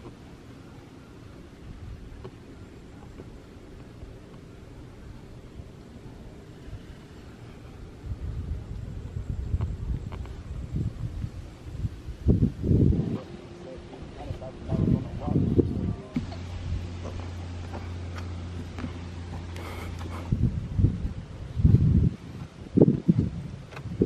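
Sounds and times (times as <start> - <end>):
wind buffeting microphone: 1.2 - 24.0.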